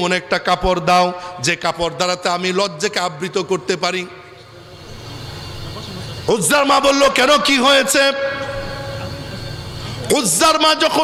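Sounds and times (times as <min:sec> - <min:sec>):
sung note echoing over loudspeakers: 0:00.0 - 0:11.0.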